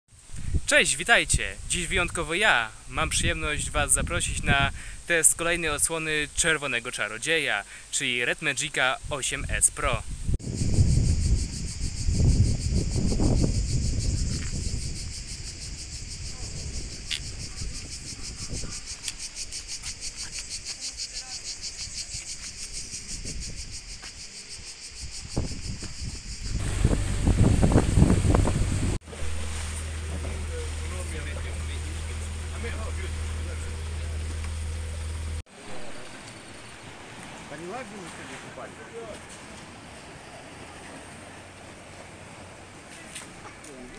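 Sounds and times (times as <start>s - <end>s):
wind buffeting microphone: 0.2s - 2.2s, 3.0s - 5.0s, 9.4s - 20.7s, 21.8s - 24.2s, 24.8s - 35.4s
insects chirring: 1.1s - 27.0s, 29.5s - 42.8s
low steady hum: 26.6s - 36.2s.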